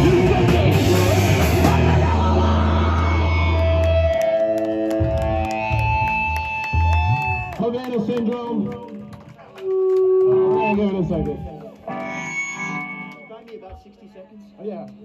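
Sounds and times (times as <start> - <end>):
heavy rock band chord ringing: 0.0 - 4.0
held guitar tones: 11.8 - 14.0.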